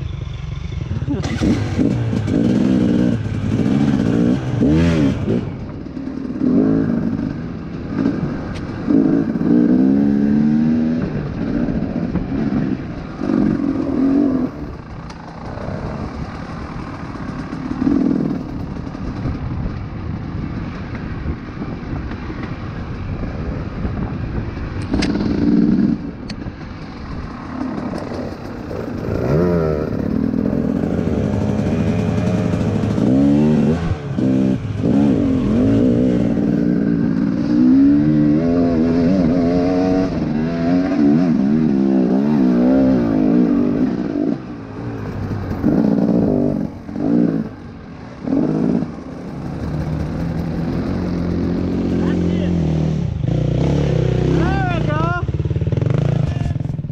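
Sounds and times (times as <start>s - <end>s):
dirt bike engine revving: 0.0s - 19.3s, 24.9s - 47.6s, 48.2s - 56.9s.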